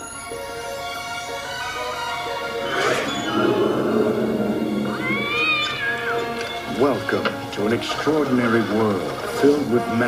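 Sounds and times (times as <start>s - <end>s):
background music: 0.0s - 10.0s
cat meowing: 3.0s - 6.6s.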